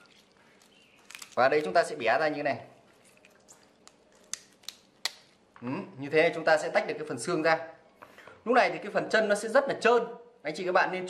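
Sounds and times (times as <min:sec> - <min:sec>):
chicken foot joint snapping: 0:01.0 - 0:01.7, 0:03.8 - 0:05.3.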